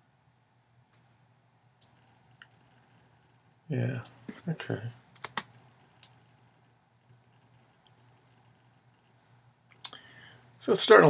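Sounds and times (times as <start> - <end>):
faint low hum: 0.0 - 11.0
keyboard and mouse clicks: 5.2 - 6.2.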